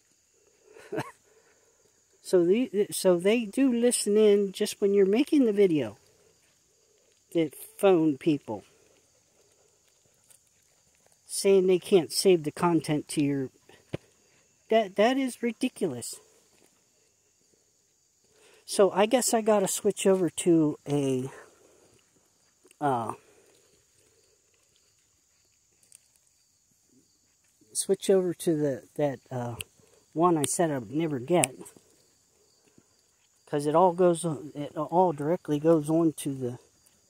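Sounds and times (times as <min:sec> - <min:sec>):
faint outdoor ambience: 0:00.0 - 0:37.0.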